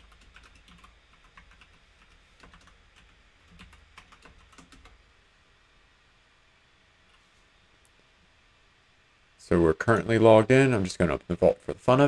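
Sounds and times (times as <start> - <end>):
keyboard typing: 0.0 - 5.0.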